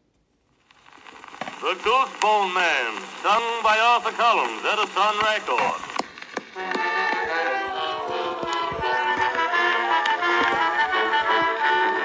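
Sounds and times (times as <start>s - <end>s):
record surface crackle: 0.1s - 12.0s
small orchestra playing: 6.6s - 12.0s.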